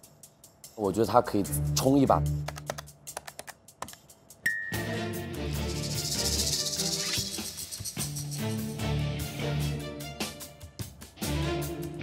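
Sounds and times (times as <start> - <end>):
short high ding: 4.4 - 5.0
bright shimmering music: 4.5 - 10.1.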